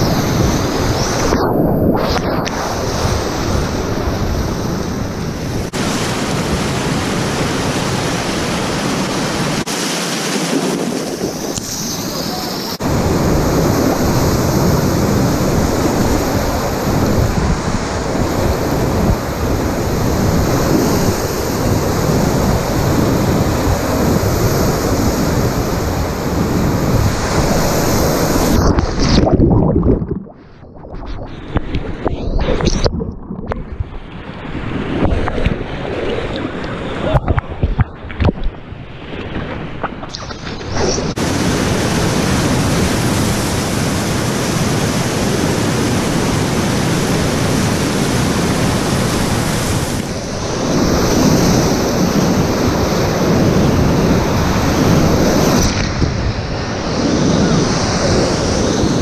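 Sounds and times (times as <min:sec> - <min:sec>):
wind buffeting microphone: 0:00.0 - 0:09.7, 0:10.4 - 0:59.0.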